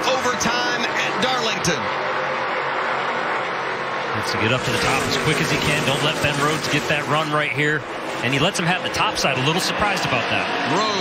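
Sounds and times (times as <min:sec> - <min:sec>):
race truck engines droning: 0:00.0 - 0:11.0.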